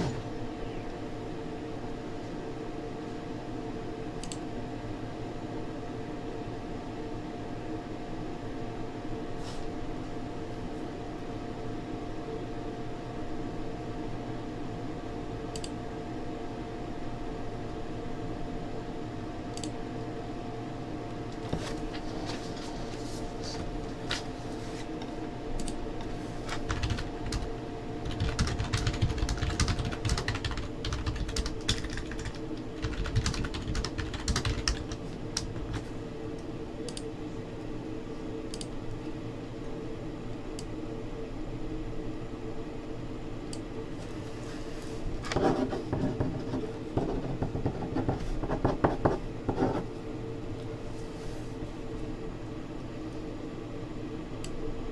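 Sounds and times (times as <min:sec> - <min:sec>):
electrical hum: 0:00.0 - 0:54.9.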